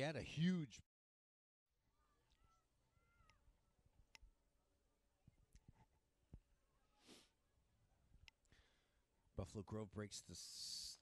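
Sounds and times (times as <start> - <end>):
faint outdoor background: 1.7 - 11.0.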